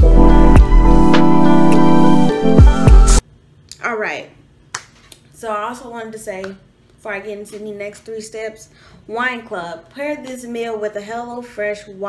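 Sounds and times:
background music: 0.0 - 3.2.

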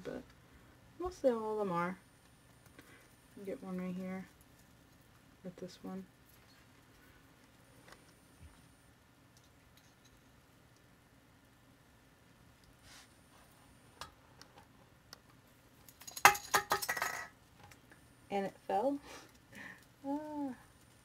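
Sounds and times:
plastic ornament clattering: 15.9 - 17.3.

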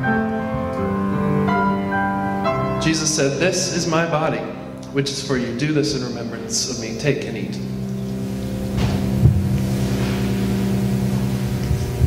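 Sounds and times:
low sustained chord drone: 0.0 - 12.0.

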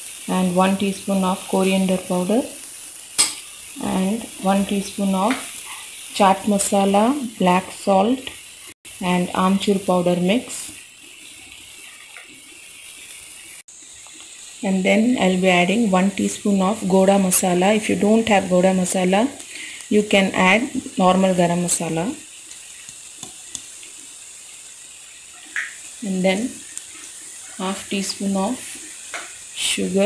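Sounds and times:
onions sizzling in hot oil: 0.0 - 30.0.

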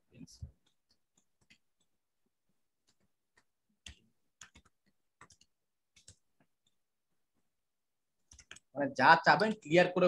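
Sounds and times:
keyboard keys clicking: 0.5 - 2.0, 2.8 - 6.8, 8.2 - 8.7
person speaking: 8.6 - 10.0.

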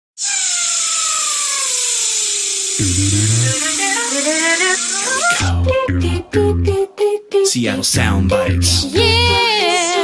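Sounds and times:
steady hiss: 0.2 - 5.5
voice gliding downward in pitch: 2.8 - 7.1.

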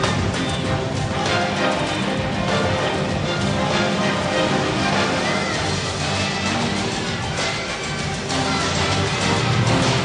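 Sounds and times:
gymnastics floor music: 0.0 - 10.0.

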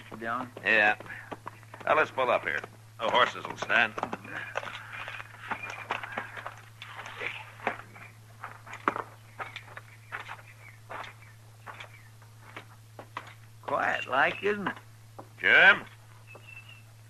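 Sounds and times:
footsteps on ground: 0.0 - 17.0
low recording hum: 0.0 - 17.0.

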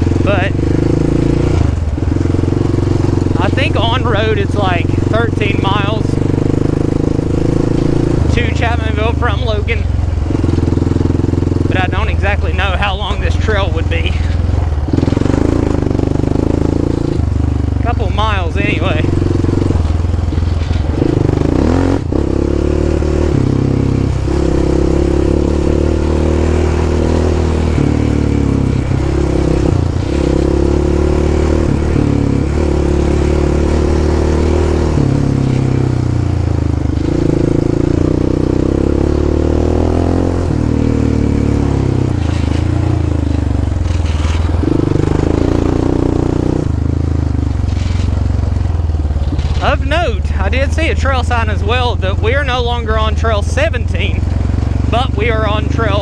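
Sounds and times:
atv engine revving: 0.0 - 56.0.

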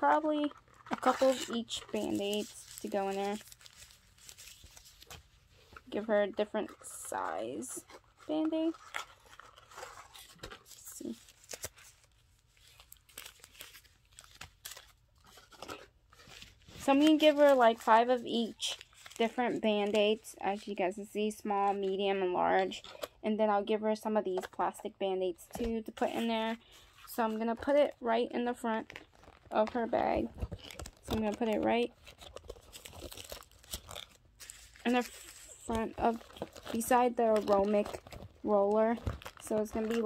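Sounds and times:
bandage wrappers crinkling: 0.0 - 20.9, 28.6 - 40.0.

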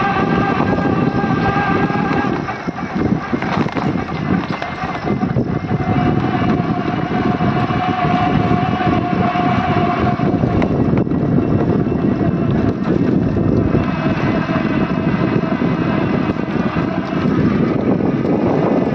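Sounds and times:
wind buffeting microphone: 0.0 - 18.9.

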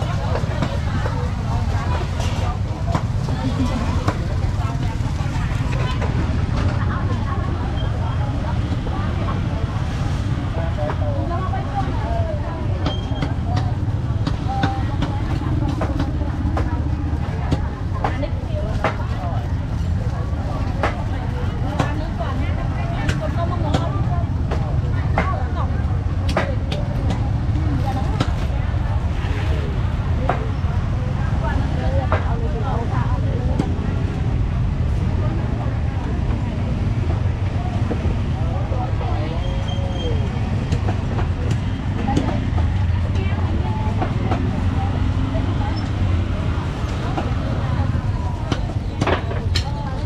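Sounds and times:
people talking: 0.0 - 50.0.

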